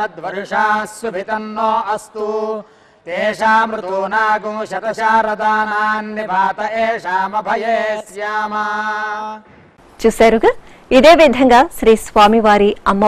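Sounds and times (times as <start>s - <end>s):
man chanting mantras: 0.0s - 9.4s.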